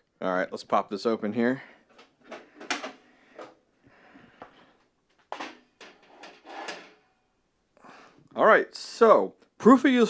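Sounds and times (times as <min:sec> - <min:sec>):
metal panel scraping clunk: 0:05.3 - 0:07.1.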